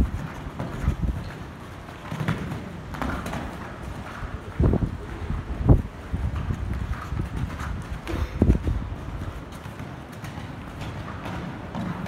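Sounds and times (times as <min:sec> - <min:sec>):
horse hoofbeats on sand: 0:00.0 - 0:12.0
loud hoof thumps: 0:00.0 - 0:12.0.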